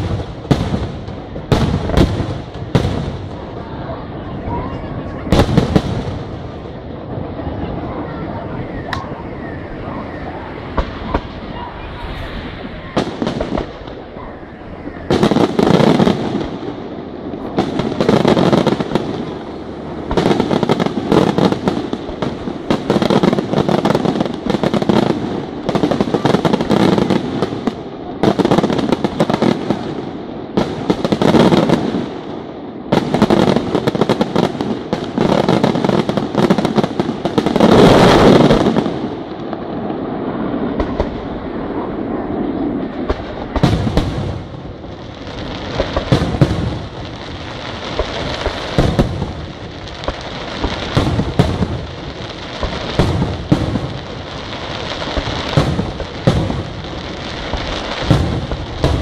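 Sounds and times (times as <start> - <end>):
fireworks bangs and shell bursts: 0.0 - 3.6, 10.3 - 14.2, 15.0 - 59.0.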